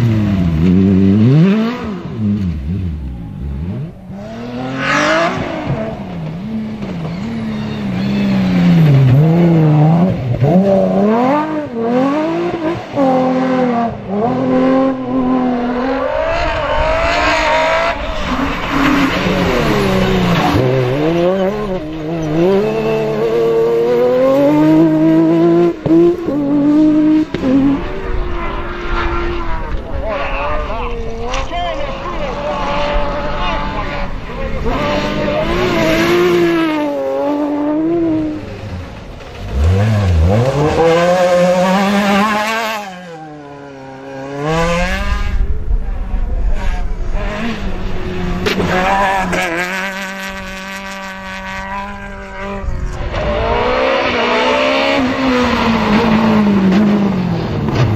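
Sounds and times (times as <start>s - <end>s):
rally car engines revving: 0.0s - 57.9s.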